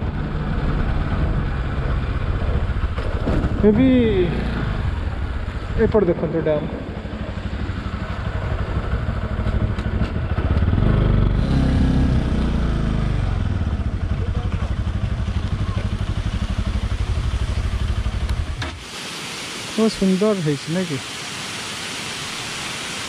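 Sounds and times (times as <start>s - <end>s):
motorcycle engine chugging: 0.0s - 18.6s
water pouring into spillway: 15.1s - 23.0s.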